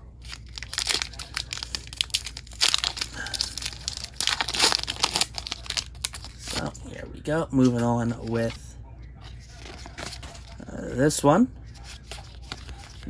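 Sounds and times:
foil wrapper crinkling and tearing: 0:00.2 - 0:06.7.

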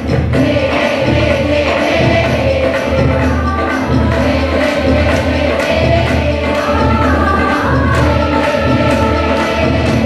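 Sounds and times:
choir singing a folk song: 0:00.0 - 0:10.0
steady beat: 0:00.0 - 0:10.0.

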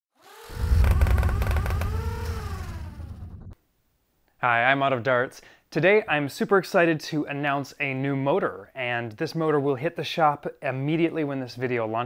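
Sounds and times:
deep rumble with rising tones: 0:00.5 - 0:03.6.

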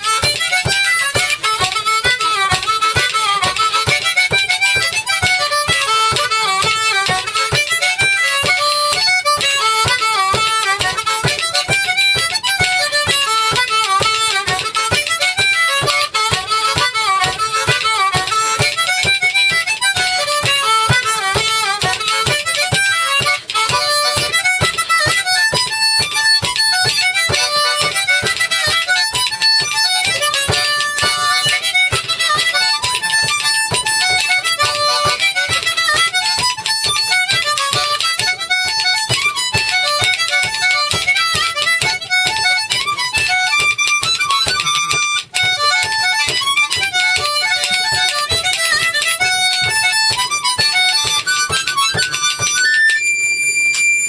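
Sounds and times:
harmonica and fiddle tune: 0:00.0 - 0:54.0.

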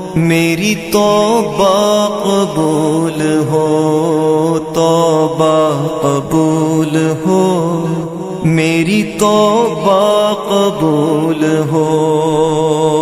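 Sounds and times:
held vocal drone: 0:00.0 - 0:13.0.

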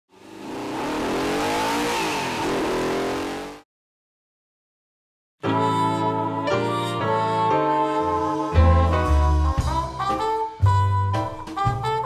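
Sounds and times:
car engine revving: 0:00.1 - 0:03.6.

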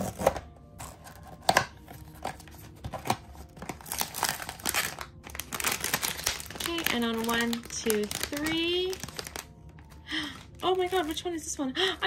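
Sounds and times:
packaging crinkling: 0:00.0 - 0:11.4.

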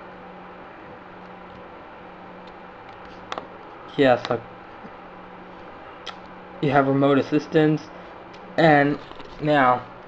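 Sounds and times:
faint hum: 0:00.0 - 0:10.0
steady low hiss: 0:00.0 - 0:10.0.

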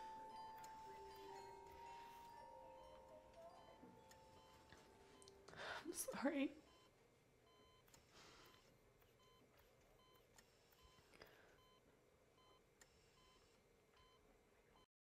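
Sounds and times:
heart monitor beeping: 0:00.0 - 0:14.2.

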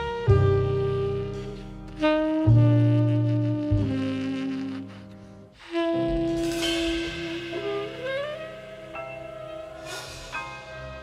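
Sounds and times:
double bass notes: 0:00.0 - 0:11.0
piano chords: 0:00.0 - 0:11.0
tenor saxophone long notes: 0:00.0 - 0:11.0
cymbal wash: 0:06.3 - 0:11.0.

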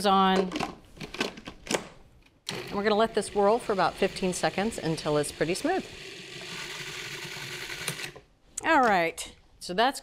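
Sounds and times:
food processor running: 0:02.5 - 0:08.2.

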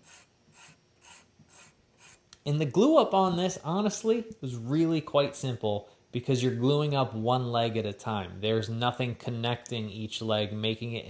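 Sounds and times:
hand file rasping on wood: 0:00.0 - 0:02.2.

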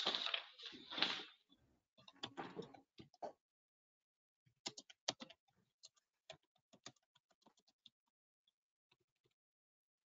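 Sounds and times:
computer keyboard tapping: 0:04.5 - 0:09.4.

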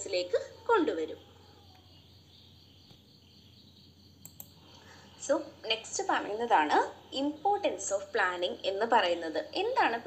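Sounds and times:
faint clicks: 0:04.2 - 0:04.8.

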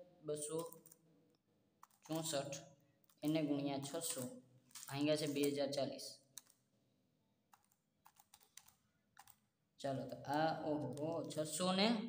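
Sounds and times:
calculator keys clicking: 0:10.1 - 0:11.6.

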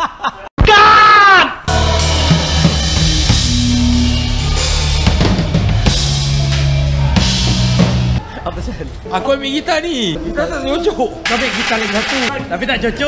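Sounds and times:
person shouting: 0:00.6 - 0:02.1
drum kit playing: 0:01.7 - 0:08.2, 0:11.3 - 0:12.3
electric bass low notes: 0:01.7 - 0:08.2.

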